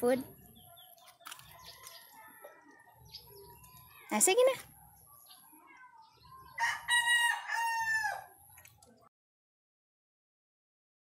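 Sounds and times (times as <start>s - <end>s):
rooster crowing: 6.6s - 8.3s.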